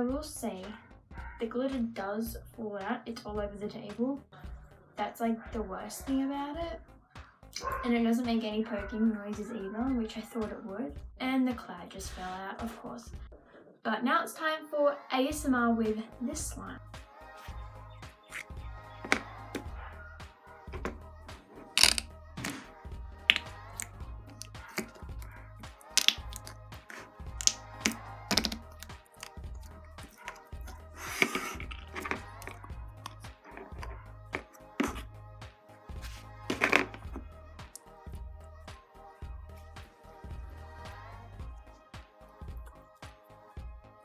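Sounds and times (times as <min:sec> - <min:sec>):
background music with low beat: 0:00.0 - 0:13.5, 0:15.3 - 0:44.0
slime squeezed by hand: 0:23.3 - 0:29.4
sharp slime clicks: 0:25.9 - 0:26.5.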